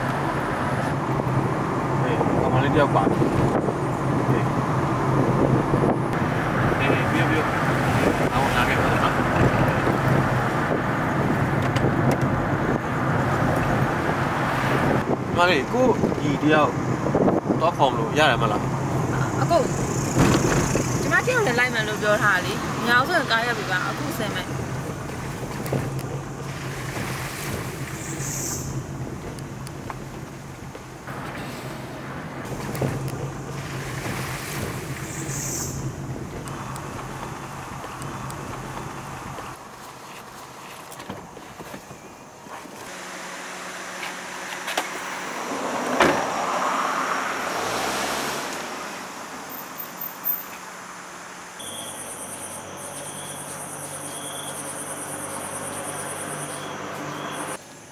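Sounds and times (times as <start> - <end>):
car cabin road and engine noise: 0.0 - 57.9.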